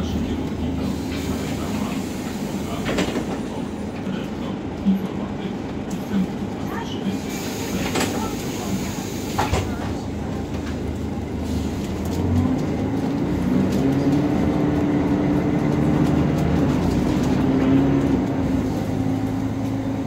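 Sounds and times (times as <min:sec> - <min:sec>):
bus engine drone: 0:00.0 - 0:20.0.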